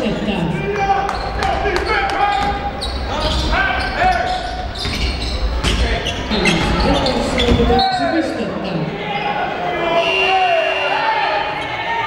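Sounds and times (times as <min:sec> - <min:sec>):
crowd voices: 0:00.0 - 0:12.0
sneaker squeaks on floor: 0:01.1 - 0:08.2
basketball bouncing on court: 0:04.7 - 0:07.8.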